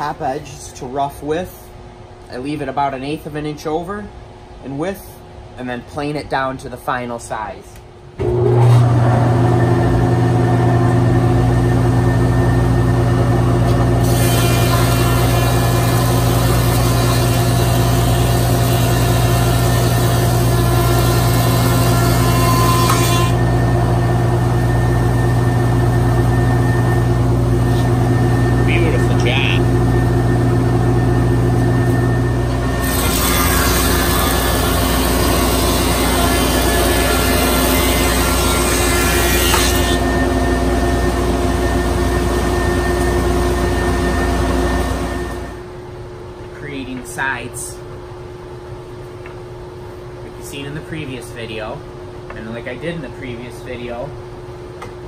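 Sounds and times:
planer motor hum: 8.2s - 45.5s.

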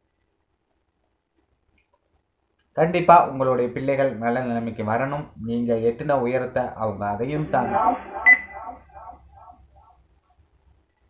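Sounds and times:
faint choppy sounds: 0.0s - 2.9s, 6.6s - 11.0s
high-pitched electronic beep: 7.4s - 9.6s.

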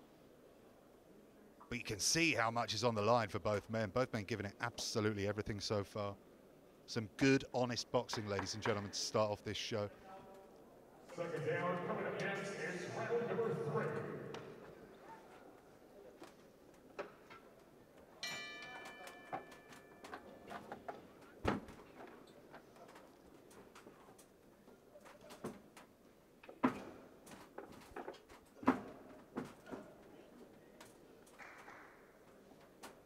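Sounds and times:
boxing ring bell ringing: 18.2s - 20.5s
footwork on ring canvas: 18.2s - 31.6s.

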